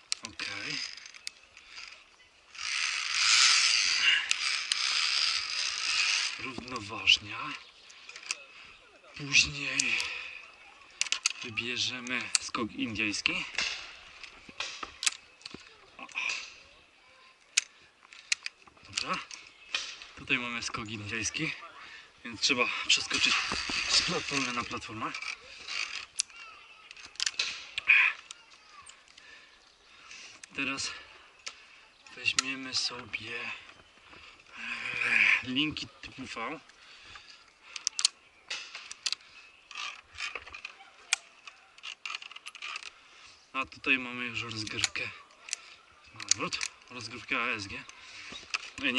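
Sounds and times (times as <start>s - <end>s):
clicks and knocks of gear: 0.0s - 8.5s, 9.2s - 16.6s, 17.3s - 21.5s, 22.4s - 29.4s, 35.5s - 43.0s, 43.6s - 48.9s
breathy rustle: 0.0s - 20.2s, 21.0s - 48.9s.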